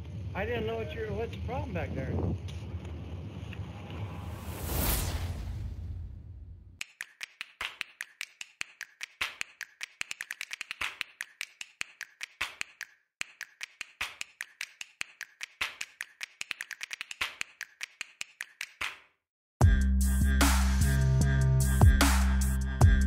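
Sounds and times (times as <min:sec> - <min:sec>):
wind noise: 0:00.6 - 0:06.8
rapid sharp clicks: 0:06.8 - 0:18.9.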